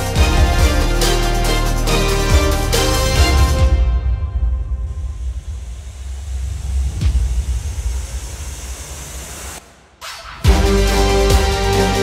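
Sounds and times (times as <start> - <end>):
music with sustained tones: 0.0 - 5.3, 10.5 - 12.0.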